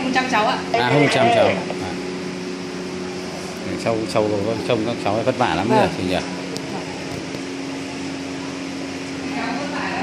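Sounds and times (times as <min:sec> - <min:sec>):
fan humming: 0:00.0 - 0:10.0
person speaking: 0:00.7 - 0:01.8.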